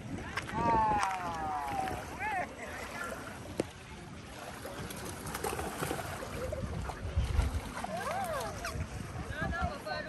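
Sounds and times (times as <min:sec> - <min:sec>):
small waves: 0:00.0 - 0:10.0
wind: 0:00.0 - 0:10.0.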